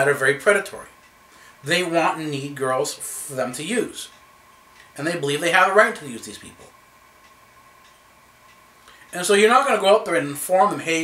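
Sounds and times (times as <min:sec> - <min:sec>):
faint steady hum: 0:00.0 - 0:11.0
faint ticks: 0:07.2 - 0:09.2.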